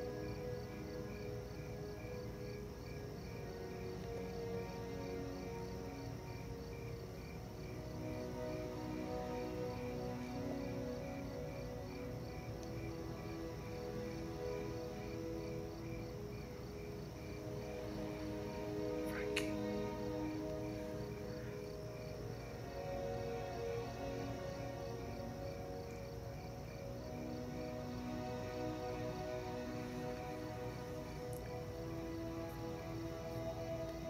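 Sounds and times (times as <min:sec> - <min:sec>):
crickets chirping: 0:00.0 - 0:34.0
soft film score music: 0:00.0 - 0:34.0.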